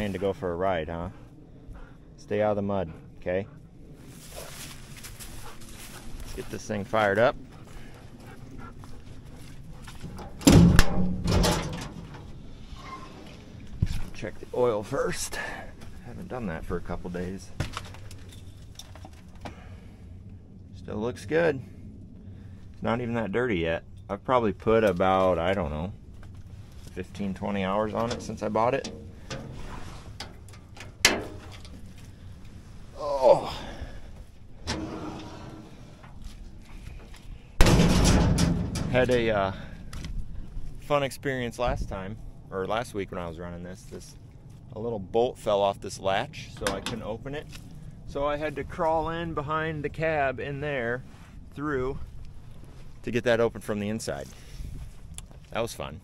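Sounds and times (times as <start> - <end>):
metal door clatter: 10.1 - 13.2, 28.0 - 31.7, 37.6 - 39.3.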